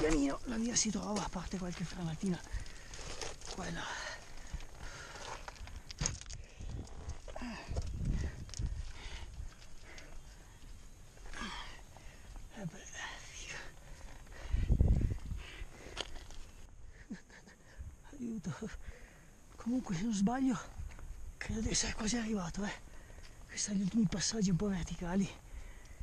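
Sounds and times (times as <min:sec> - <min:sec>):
hands and boots scraping rock: 0:01.1 - 0:07.4.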